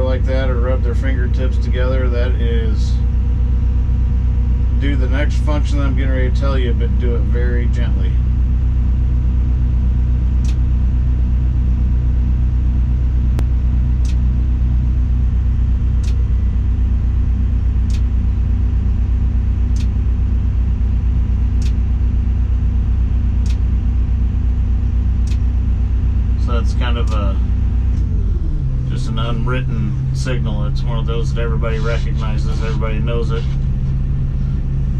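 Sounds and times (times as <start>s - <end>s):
diesel engine running: 0.0s - 34.9s
faint ticking: 15.9s - 16.4s, 17.7s - 22.3s, 23.2s - 28.2s.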